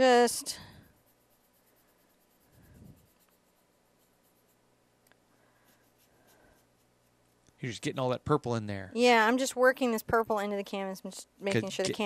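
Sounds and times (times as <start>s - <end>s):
paintbrush scrubbing on canvas: 0.0s - 4.6s, 5.6s - 7.4s
low electrical hum: 0.0s - 12.0s.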